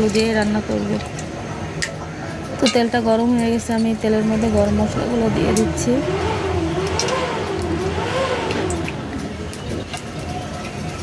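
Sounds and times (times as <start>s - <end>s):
spices ticking in hot oil: 0.0s - 11.0s
steady low rumble: 3.5s - 10.0s.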